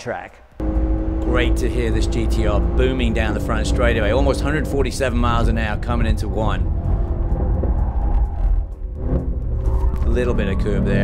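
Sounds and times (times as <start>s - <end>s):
car engine off throttle: 0.6s - 11.0s.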